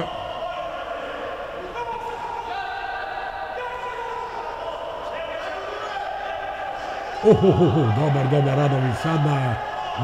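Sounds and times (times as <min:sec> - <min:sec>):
indistinct voices in a sports hall: 0:00.0 - 0:10.0.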